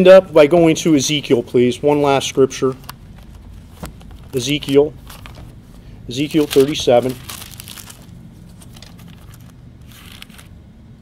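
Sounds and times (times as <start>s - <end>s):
paper pages rustling: 1.9s - 10.5s.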